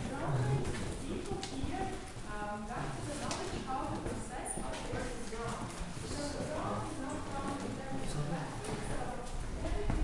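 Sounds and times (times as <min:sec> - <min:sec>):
footsteps with heel clicks: 0:00.0 - 0:10.0
people talking: 0:00.0 - 0:10.0.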